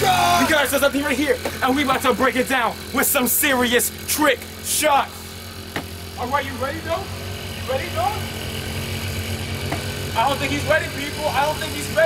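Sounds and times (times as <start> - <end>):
scooter engine humming: 0.0 - 12.0.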